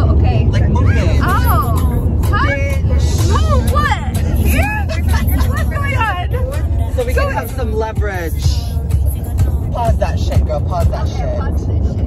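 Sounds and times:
high animated voices: 0.0s - 9.8s
car cabin rumble: 0.0s - 12.0s.

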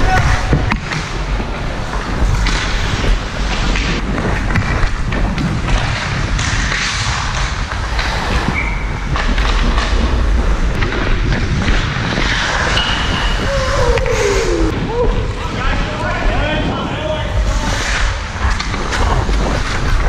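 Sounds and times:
wind rumble on microphone: 0.0s - 20.0s
hockey sticks and puck clacking: 0.1s - 14.1s, 17.7s - 20.0s
skates scraping on ice: 0.1s - 14.7s, 17.0s - 20.0s.

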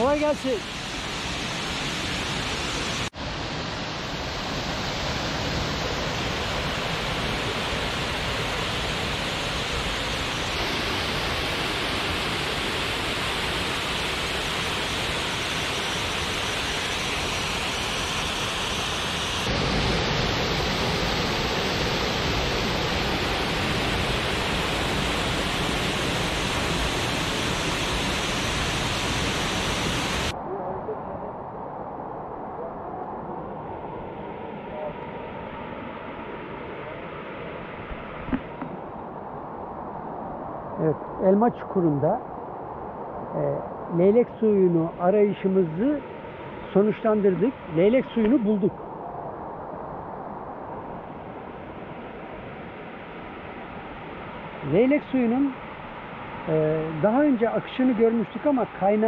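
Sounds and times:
waterfall rushing: 0.0s - 30.4s.

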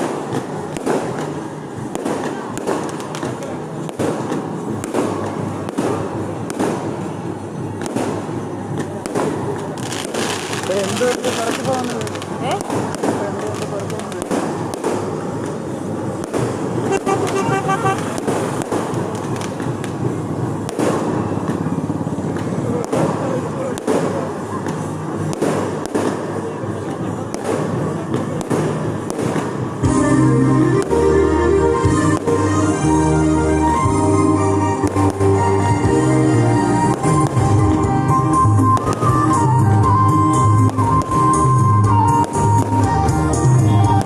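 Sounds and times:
loud sharp bangs: 0.0s - 30.0s
festival crowd noise: 0.0s - 44.0s
firecrackers crackling: 0.0s - 44.0s
music: 29.8s - 44.0s.

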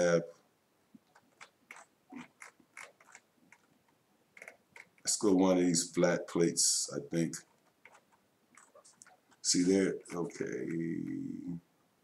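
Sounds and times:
computer mouse clicking: 1.0s - 3.8s, 4.4s - 5.1s, 7.4s - 9.5s.

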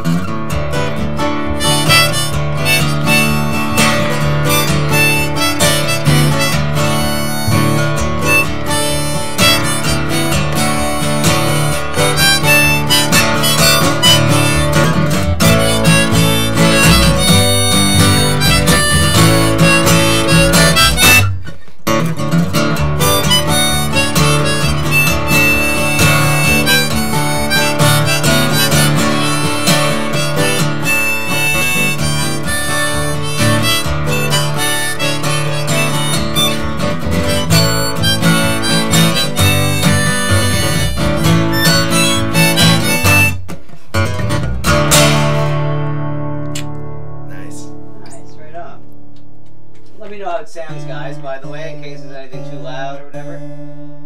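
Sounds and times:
harmonica: 0.0s - 45.6s
strummed acoustic guitar: 0.0s - 54.0s.

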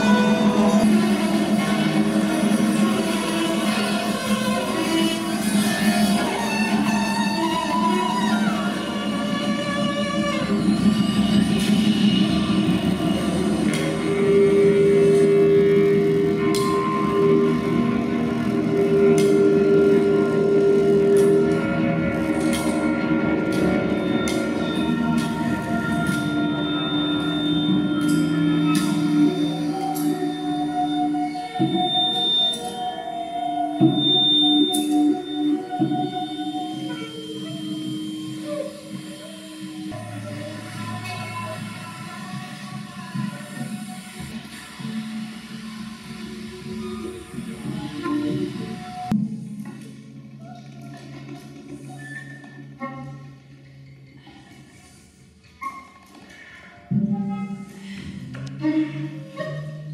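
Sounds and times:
large ensemble playing held notes: 0.0s - 42.2s.

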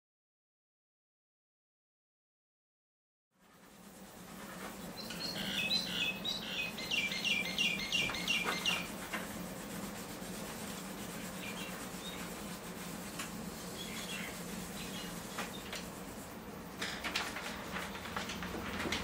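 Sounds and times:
pencils rubbing on paper: 3.4s - 5.8s, 6.8s - 19.0s
steady low hum: 3.4s - 19.0s
bird chirping: 5.0s - 8.9s, 13.7s - 15.7s.

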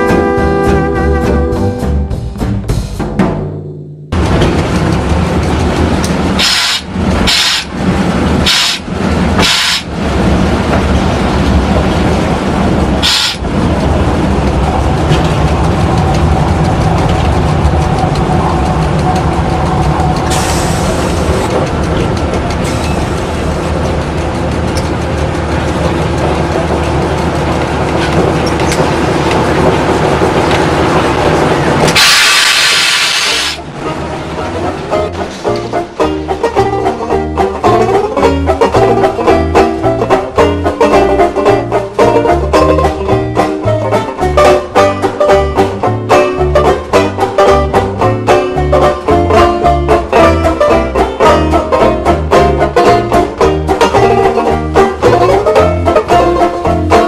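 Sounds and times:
train rumbling and rattling: 0.0s - 57.0s
loud hiss: 32.0s - 33.6s.

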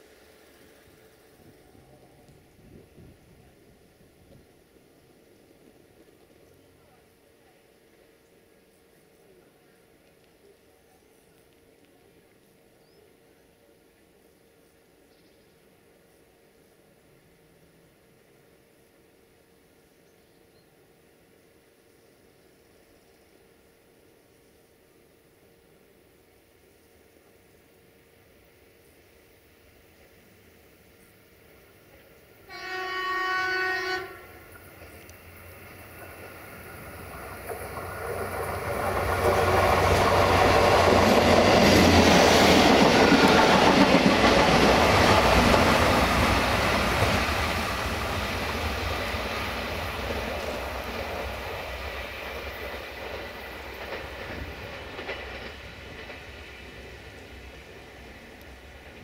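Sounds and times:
train wheels on rails passing: 0.0s - 59.0s
train horn: 32.5s - 34.5s.

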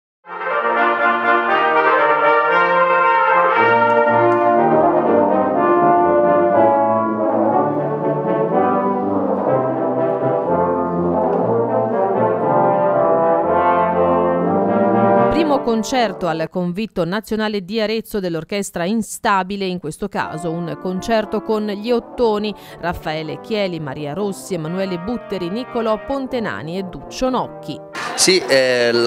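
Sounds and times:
brass quintet playing chords: 0.3s - 16.3s, 20.3s - 29.0s
tuba bass line: 0.3s - 16.4s, 20.2s - 29.0s.

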